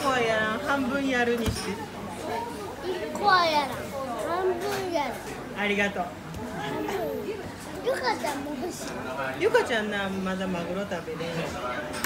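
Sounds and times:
child's voice: 2.8s - 5.2s, 7.8s - 8.7s.

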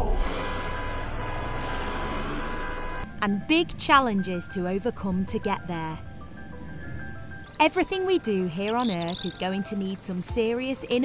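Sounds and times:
busy highway traffic: 0.1s - 11.0s.

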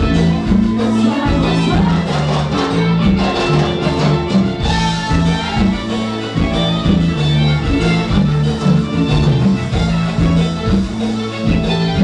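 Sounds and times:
drums: 0.0s - 12.0s
electric bass line: 0.0s - 12.0s
live band music: 0.0s - 12.0s.

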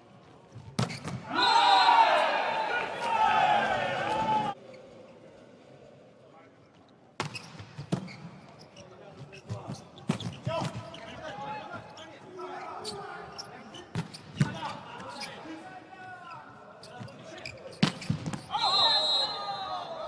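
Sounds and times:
shoes squeaking on court: 0.6s - 1.2s, 7.2s - 15.4s, 16.8s - 18.5s.

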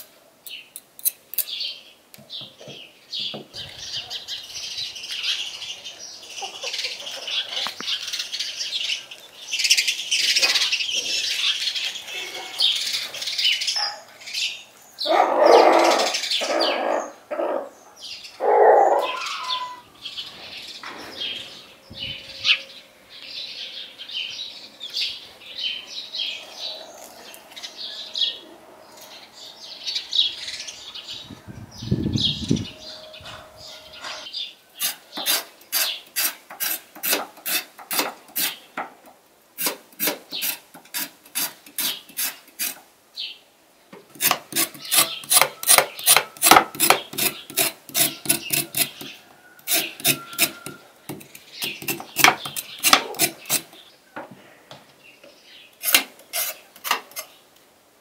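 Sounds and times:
small birds chirping: 0.0s - 36.8s, 40.0s - 40.7s, 41.4s - 57.6s
chickens calling: 3.3s - 38.8s, 44.2s - 57.4s.

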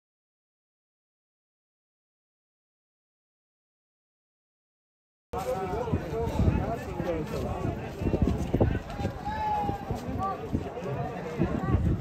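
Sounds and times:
people talking: 5.4s - 12.0s.

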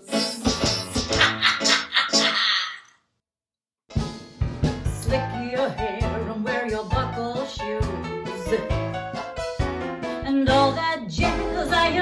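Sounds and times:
jazz band music: 4.0s - 12.0s.

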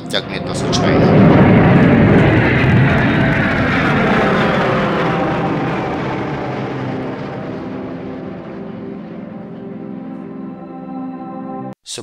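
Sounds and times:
jet engine roar: 0.0s - 10.6s
whine sliding down in pitch: 0.0s - 11.6s.

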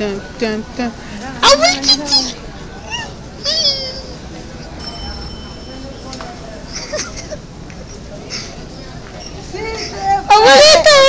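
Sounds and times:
high-pitched vocal sounds: 1.4s - 4.2s.

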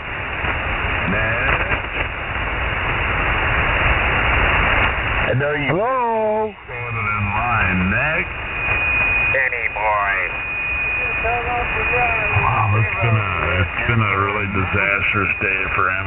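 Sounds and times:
static hiss: 0.0s - 16.0s
garbled radio voices: 1.0s - 2.0s, 5.2s - 8.3s, 9.3s - 16.0s.

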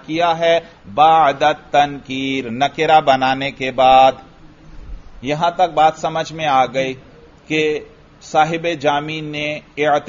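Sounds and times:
man speaking in chant-like cadence: 0.0s - 4.3s, 5.2s - 10.0s.

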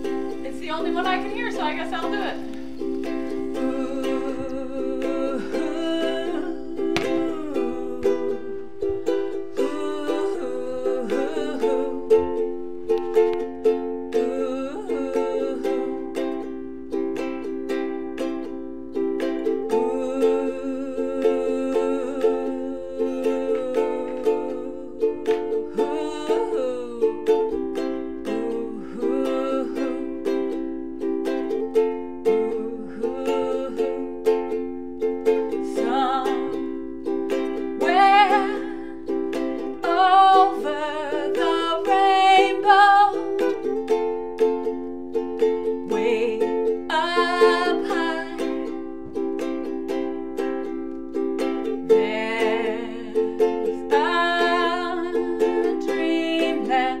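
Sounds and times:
ukulele strumming: 0.0s - 57.0s
woman singing: 0.0s - 57.0s.

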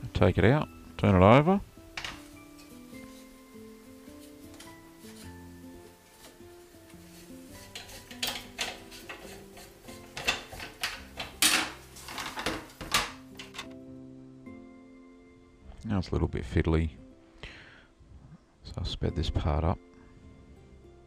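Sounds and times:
background music with held notes: 0.0s - 21.0s
cloth rustles: 2.1s - 10.1s
clatters and knocks: 10.1s - 13.7s.

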